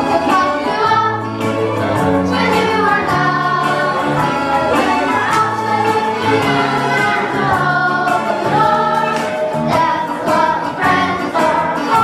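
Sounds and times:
children singing in chorus: 0.0s - 12.0s.

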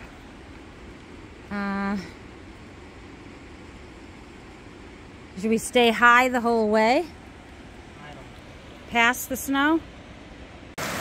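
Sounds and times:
low rushing hiss: 0.0s - 11.0s.

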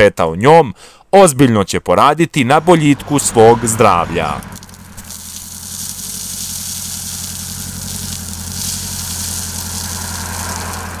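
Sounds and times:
diesel engine running: 2.5s - 11.0s
gravel pouring: 4.3s - 11.0s.

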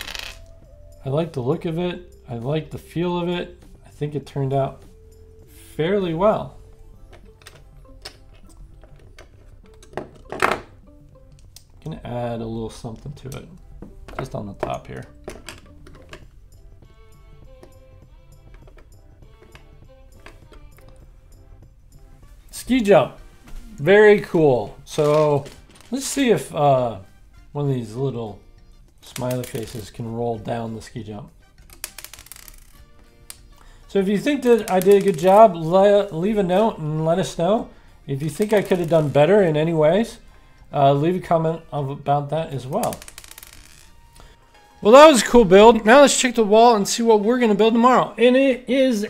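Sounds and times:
plastic pieces clicking: 0.0s - 0.5s, 29.1s - 29.9s, 31.6s - 33.6s, 34.5s - 35.4s, 38.4s - 39.2s, 42.7s - 43.9s
soft background music: 0.0s - 49.0s
plastic bricks clicking and clattering: 31.7s - 32.8s, 34.6s - 35.3s, 42.8s - 43.7s.

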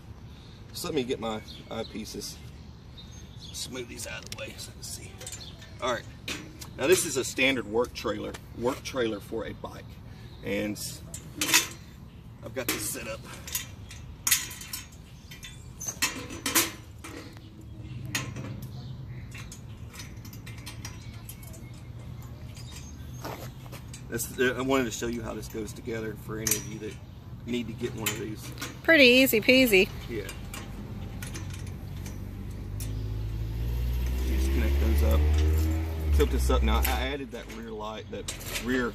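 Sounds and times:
metal frame clanking: 11.0s - 11.9s, 12.5s - 29.2s, 30.0s - 38.9s
metal frame clicks: 12.6s - 24.1s
vehicle engine humming: 14.9s - 38.9s.

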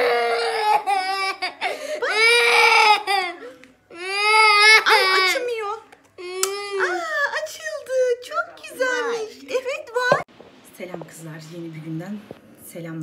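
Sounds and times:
toddler crying: 0.0s - 5.6s, 6.2s - 7.4s.

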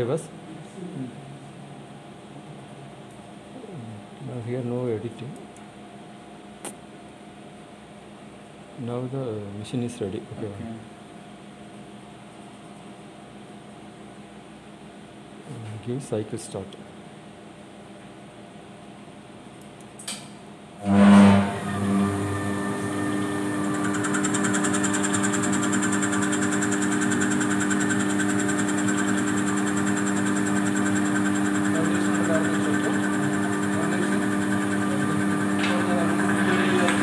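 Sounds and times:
lathe running hum: 20.8s - 37.0s.

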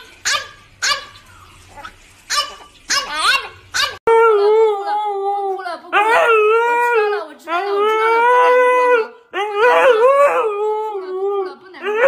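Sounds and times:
dog barking: 0.2s - 1.2s, 1.8s - 4.0s.

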